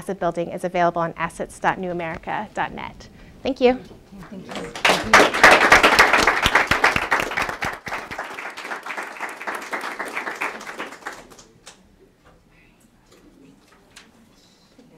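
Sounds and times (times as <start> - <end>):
audience applauding: 4.2 - 11.6.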